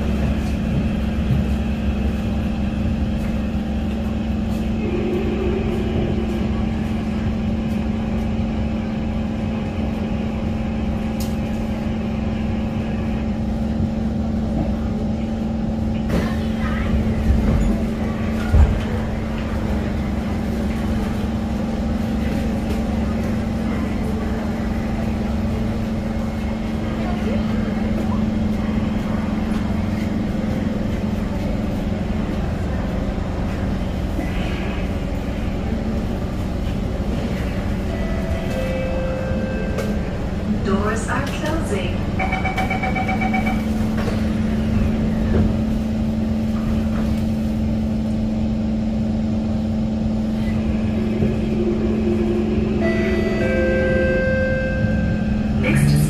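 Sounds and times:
train equipment hum: 0.0 - 56.0
train doors opening: 15.9 - 25.8, 26.4 - 47.8.

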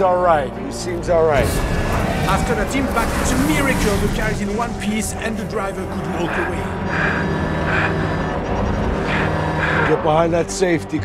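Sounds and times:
background music: 0.0 - 11.0
race car engine droning: 0.0 - 11.0.

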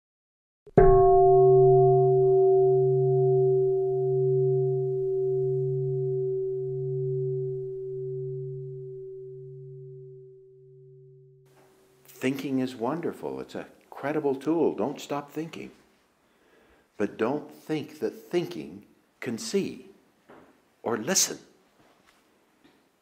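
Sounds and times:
meditation bowl ringing: 0.8 - 11.5.

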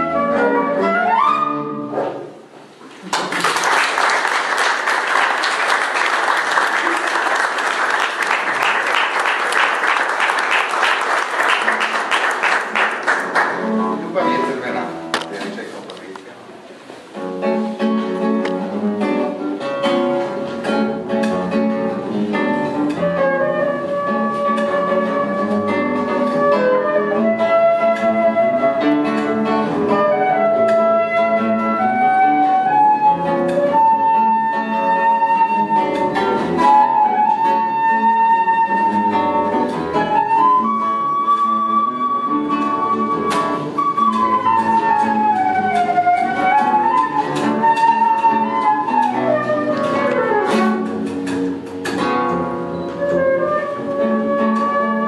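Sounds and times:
flute: 0.0 - 2.0, 22.9 - 51.1, 52.7 - 55.0
double bass: 0.0 - 2.8, 16.9 - 55.0
plucked classical guitar: 0.0 - 3.3, 8.0 - 55.0.

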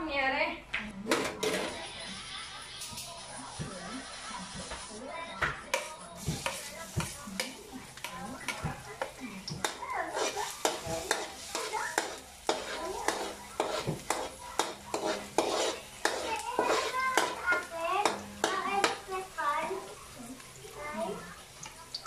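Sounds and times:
metal spatula scraping a wok: 1.1 - 5.0, 5.7 - 20.1
garlic sizzling in oil: 1.4 - 22.0.

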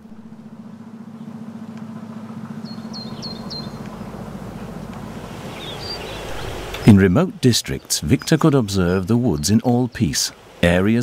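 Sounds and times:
low drone with fast pulse: 0.0 - 8.2
woodland ambience: 0.0 - 11.0
small bird chirping: 2.6 - 4.2, 5.6 - 6.9.

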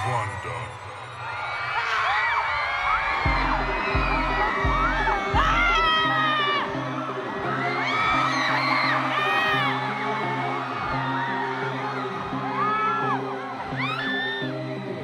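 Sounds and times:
crowd screaming and whooping: 0.0 - 15.0.

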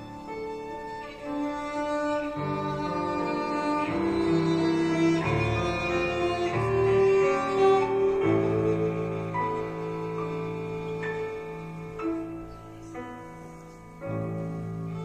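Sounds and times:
grand piano accompaniment: 0.0 - 15.0
violin melody: 0.0 - 15.0.

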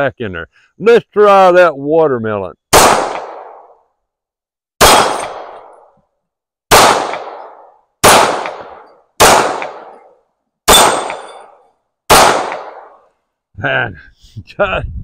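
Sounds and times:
pistol shots: 2.7 - 3.8, 4.8 - 5.9, 6.7 - 13.0.

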